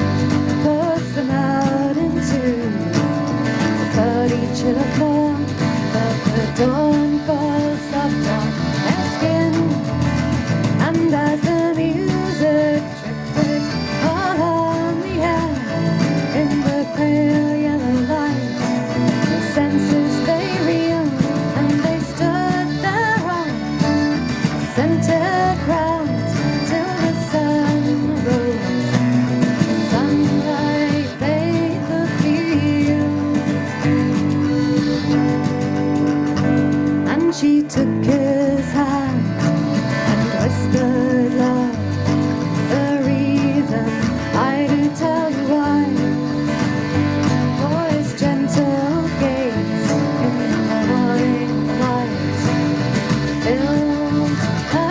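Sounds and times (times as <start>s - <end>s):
woman singing: 0.0s - 35.2s, 37.0s - 54.9s
accordion: 0.0s - 54.9s
electric bass: 0.0s - 54.9s
hand percussion: 0.0s - 54.9s
strummed acoustic guitar: 0.0s - 54.9s.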